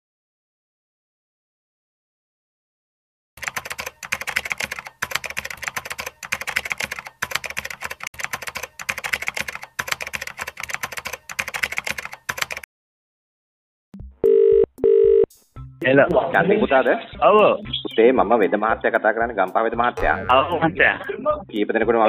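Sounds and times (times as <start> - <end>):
rapid keyboard typing: 3.4 - 12.7
telephone tone beeps: 14.2 - 15.3.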